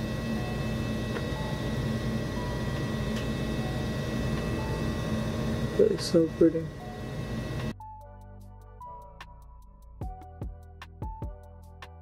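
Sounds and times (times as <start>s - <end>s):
steady low hum: 0.0s - 7.8s.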